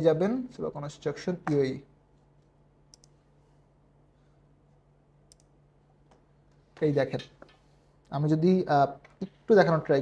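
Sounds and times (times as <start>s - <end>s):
man speaking: 0.0s - 1.9s, 6.8s - 7.4s, 8.1s - 10.0s
computer mouse clicks: 2.9s - 3.2s, 5.3s - 5.5s.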